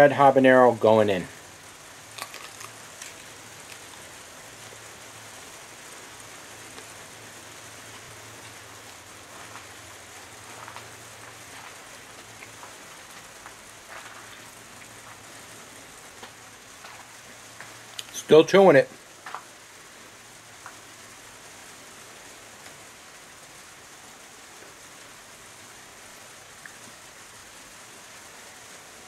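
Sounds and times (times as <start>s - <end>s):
steady hiss: 0.0s - 29.0s
chewing with mouth closed: 2.2s - 4.0s.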